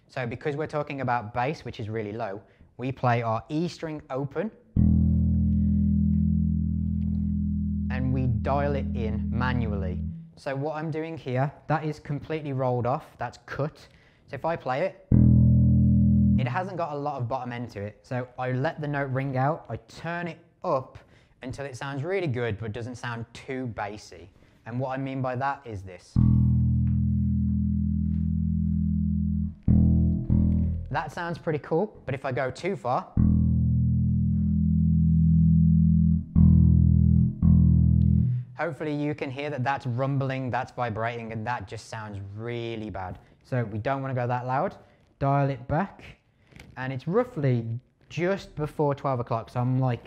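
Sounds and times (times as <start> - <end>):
electric bass low note ringing: 4.8 - 10.4, 15.1 - 16.6, 26.2 - 31.1, 33.2 - 38.5.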